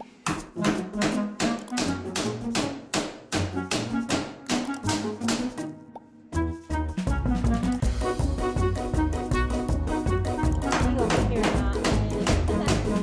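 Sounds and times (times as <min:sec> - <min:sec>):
background music: 0:00.0 - 0:13.0
hammer tapping metal: 0:00.2 - 0:05.6.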